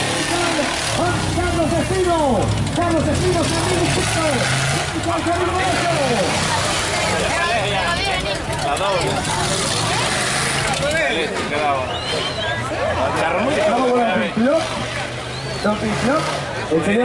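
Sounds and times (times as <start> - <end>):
off-road engines revving: 0.0 - 17.0
people shouting and yelling: 0.0 - 17.0.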